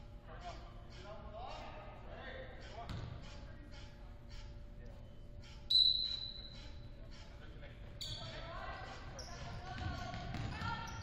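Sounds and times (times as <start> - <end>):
basketball bouncing on hardwood floor: 2.9 - 3.2, 9.4 - 10.8.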